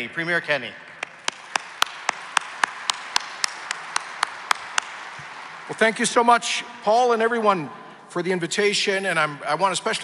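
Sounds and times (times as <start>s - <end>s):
sharp single claps: 1.0s - 5.8s
audience applauding: 1.0s - 6.3s.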